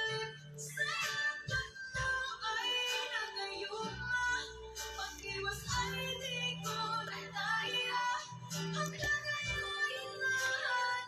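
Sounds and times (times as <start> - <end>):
instrumental backing track: 0.0 - 11.0
woman singing: 0.0 - 11.0.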